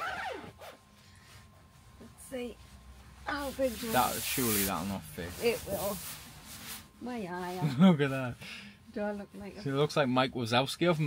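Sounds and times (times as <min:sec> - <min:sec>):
clothing rustling: 0:00.0 - 0:07.8.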